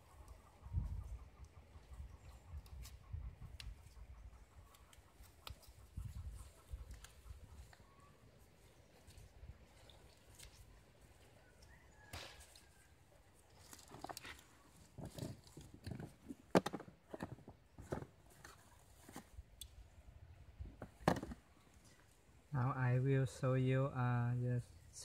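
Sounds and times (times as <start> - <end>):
hands handling tape and plastic: 13.4 - 19.8.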